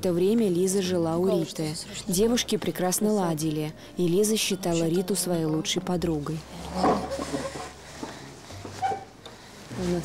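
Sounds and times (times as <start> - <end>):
wooden chair pulled on tiles: 6.4 - 10.0
chair squeak: 6.6 - 7.8, 8.6 - 9.2.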